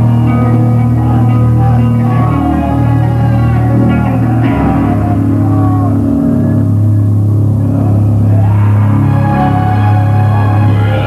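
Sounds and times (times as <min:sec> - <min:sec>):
bass guitar low notes: 0:00.0 - 0:11.0
distorted electric guitar: 0:00.0 - 0:11.0.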